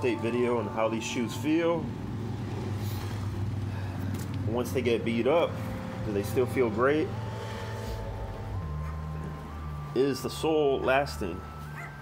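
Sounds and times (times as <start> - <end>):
steady low hum: 0.0 - 11.9.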